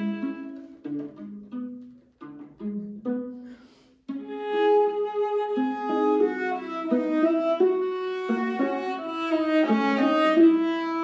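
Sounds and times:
violas playing bowed duet: 0:00.0 - 0:11.0.

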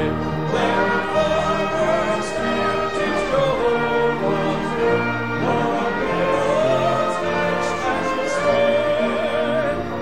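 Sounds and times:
instrumental accompaniment: 0:00.0 - 0:10.0
man singing with vibrato: 0:00.0 - 0:10.0.

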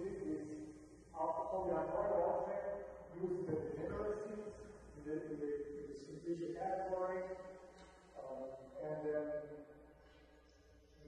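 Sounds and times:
man speaking: 0:00.0 - 0:09.7.

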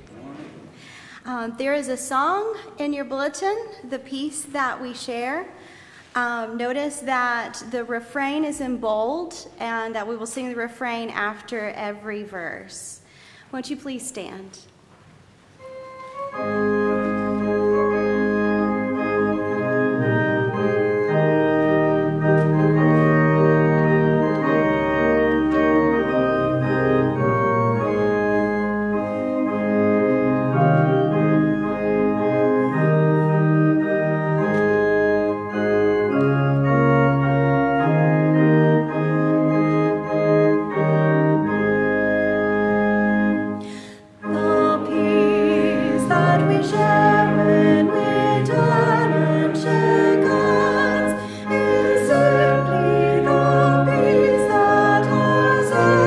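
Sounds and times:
organ playing hymn chords: 0:15.4 - 0:56.0
voices singing: 0:44.2 - 0:56.0.

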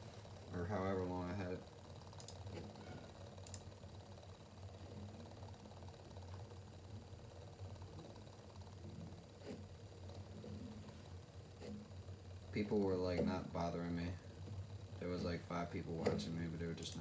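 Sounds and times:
low steady hum: 0:00.0 - 0:17.0
faint clicks: 0:02.0 - 0:02.8, 0:03.4 - 0:03.7.

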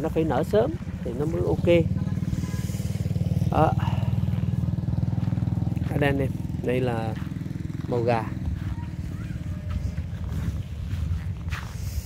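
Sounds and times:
small engine running: 0:00.0 - 0:12.0.

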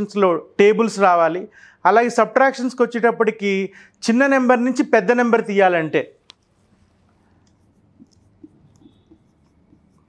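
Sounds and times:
marker writing on whiteboard: 0:06.1 - 0:10.0.

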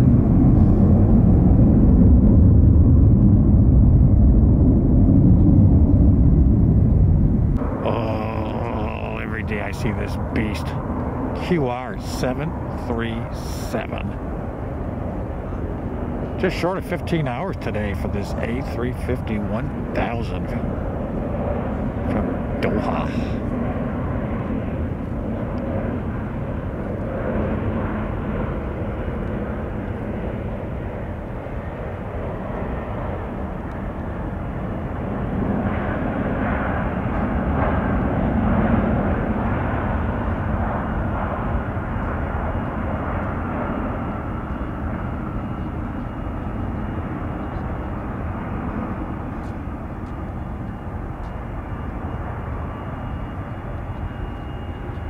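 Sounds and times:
jet engines rumbling on landing: 0:00.0 - 0:55.0.

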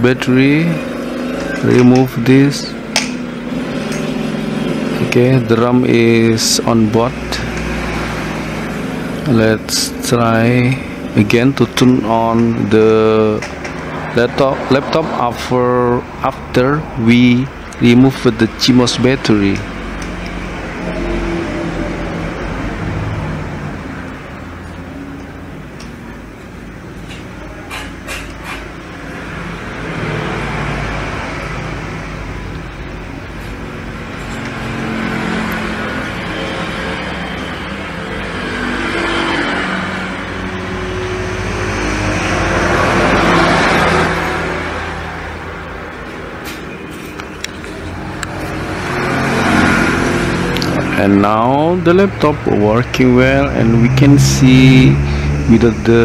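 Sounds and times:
vehicles passing by: 0:00.0 - 0:56.0.

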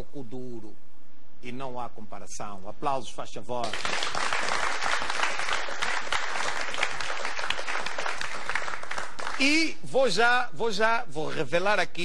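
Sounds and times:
audience applauding: 0:03.6 - 0:09.5.

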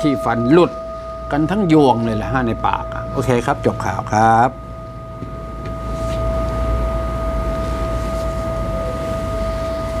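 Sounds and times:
steady tone: 0:00.0 - 0:10.0.

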